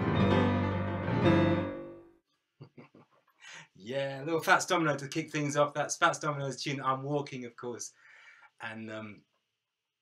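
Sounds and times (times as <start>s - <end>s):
grand piano rhythm and blues: 0.0s - 2.1s
piano final chord ringing: 0.0s - 2.2s.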